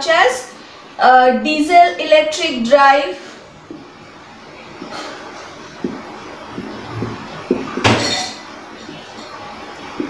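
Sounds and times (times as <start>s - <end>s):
marker writing on whiteboard: 4.8s - 8.0s.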